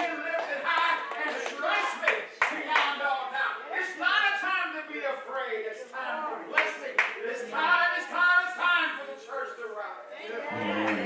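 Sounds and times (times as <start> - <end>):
hand clapping: 0.0 - 3.0, 6.5 - 7.2, 10.6 - 11.0
voices praying: 0.0 - 11.0.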